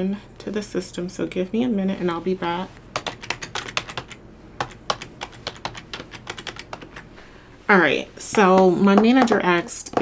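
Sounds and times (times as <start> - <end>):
computer keyboard typing: 2.9 - 7.1.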